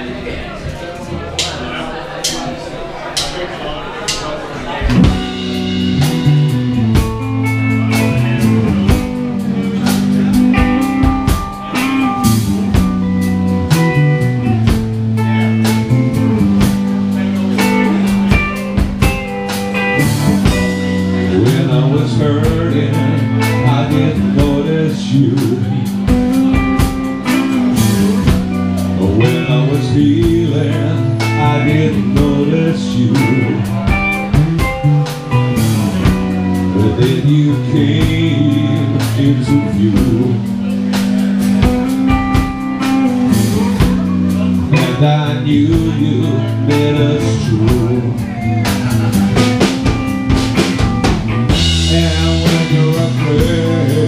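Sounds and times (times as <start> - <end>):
guitars: 0.0 - 54.0
drum kit steady beat: 1.3 - 3.4, 4.0 - 54.0.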